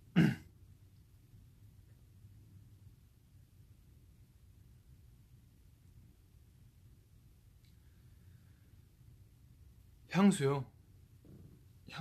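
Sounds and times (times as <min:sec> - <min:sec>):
man clearing throat: 0:00.1 - 0:00.5.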